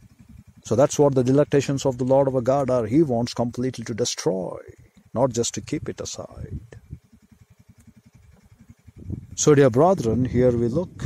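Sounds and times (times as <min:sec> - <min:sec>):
faint low pulsing engine throb: 0:00.0 - 0:11.0.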